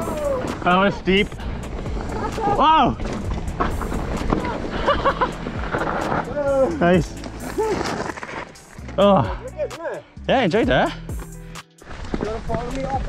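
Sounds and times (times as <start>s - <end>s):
person shouting: 0.0s - 0.5s
bike knocking and rattling: 0.0s - 9.0s, 11.8s - 13.0s
bike tyres on dirt and stones: 0.0s - 9.6s, 10.7s - 13.0s.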